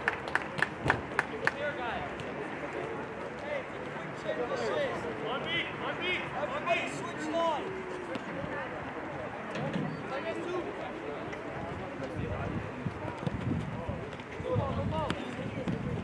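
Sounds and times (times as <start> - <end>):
people clapping: 0.0 - 1.7.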